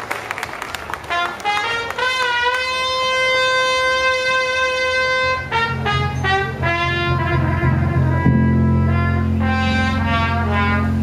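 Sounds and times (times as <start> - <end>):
trumpet holding a long note: 1.0 - 11.0.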